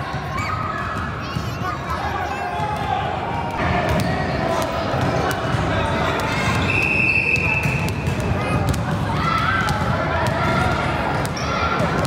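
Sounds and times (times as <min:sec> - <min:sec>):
chatter of spectators: 0:00.0 - 0:12.0
basketballs bouncing on gym floor: 0:02.6 - 0:06.7, 0:07.3 - 0:12.0.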